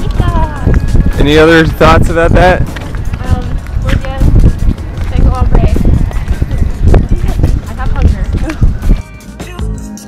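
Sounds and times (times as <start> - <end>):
wind rumble on microphone: 0.0 - 9.1
footsteps: 0.0 - 9.5
music: 0.0 - 10.0.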